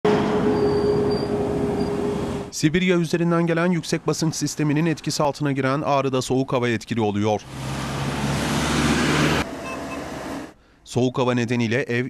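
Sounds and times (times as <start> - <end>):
van road noise: 0.0 - 10.8.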